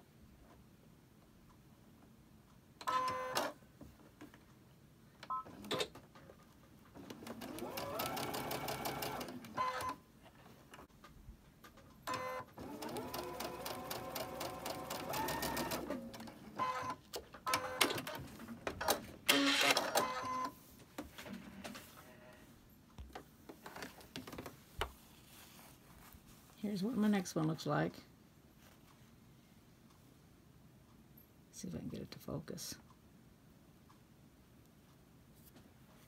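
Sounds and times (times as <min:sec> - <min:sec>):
sewing machine stitching: 0:07.0 - 0:10.0, 0:12.1 - 0:20.4.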